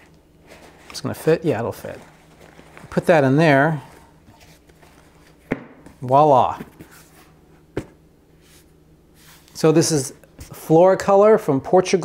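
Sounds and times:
handling of a box: 0.4s - 8.0s.

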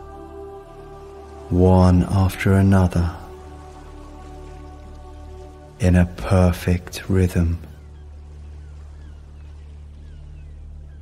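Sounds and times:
hiss of water or rain: 0.0s - 11.0s
soft ambient pad music: 0.0s - 11.0s.

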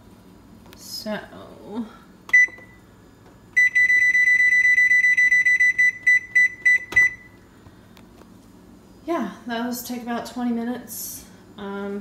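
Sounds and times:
control panel beeps: 2.3s - 2.8s, 3.6s - 7.3s.

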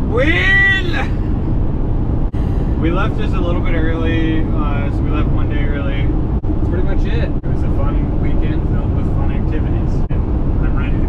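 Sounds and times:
road and engine rumble in van: 0.0s - 11.0s.

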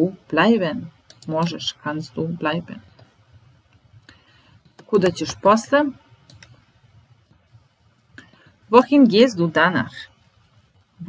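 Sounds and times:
computer mouse clicks: 1.0s - 1.6s, 6.2s - 6.6s.

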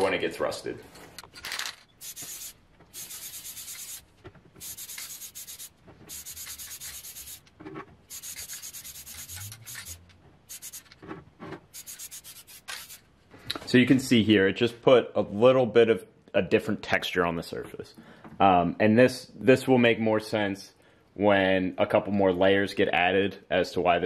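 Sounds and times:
aerosol can spraying: 2.0s - 7.5s, 8.1s - 11.0s, 11.7s - 13.0s.

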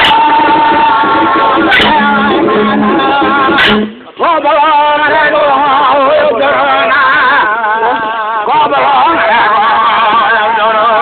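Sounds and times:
men singing ceremonial song: 0.0s - 11.0s.

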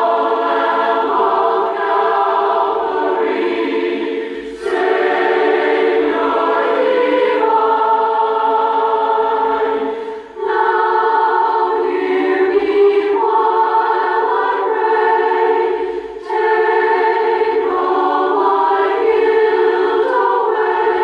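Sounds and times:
choir singing long chords: 0.0s - 21.0s.

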